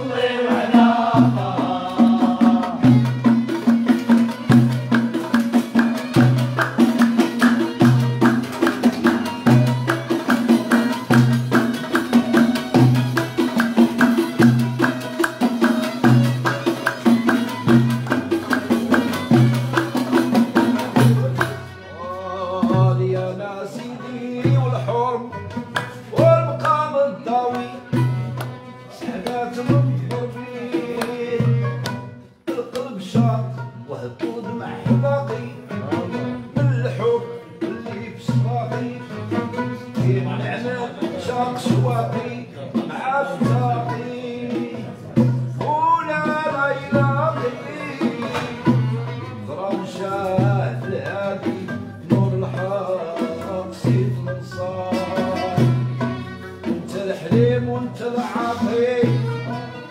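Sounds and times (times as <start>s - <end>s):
oud and bowed strings melody: 0.0s - 59.9s
violin: 0.0s - 59.9s
voices singing: 0.0s - 59.9s.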